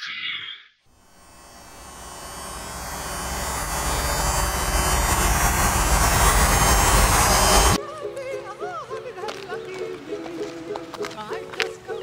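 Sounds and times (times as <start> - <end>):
harsh buzzing hissing noise: 0.9 - 7.8.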